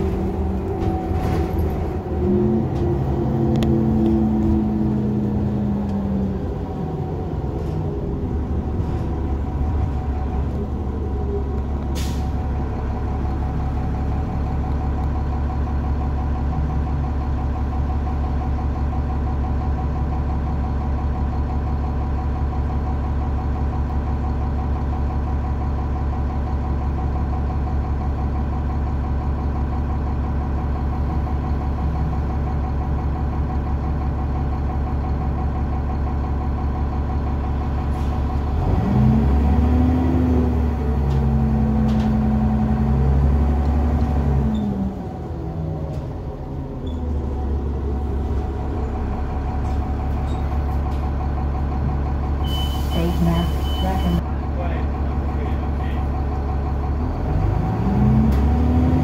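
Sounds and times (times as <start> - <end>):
bus diesel engine revving: 0.0 - 59.0.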